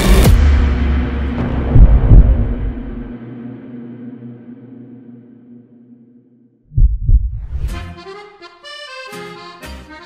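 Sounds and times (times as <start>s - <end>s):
music: 0.0s - 6.4s, 7.5s - 10.0s
low drone: 0.0s - 6.6s
deep heartbeat-like thumps: 0.2s - 5.2s, 6.6s - 7.8s
bright hit: 0.2s - 6.6s.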